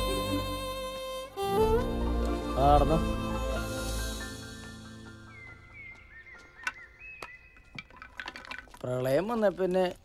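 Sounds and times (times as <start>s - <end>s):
soft string music: 0.0s - 6.8s
birds chirping: 1.2s - 9.9s.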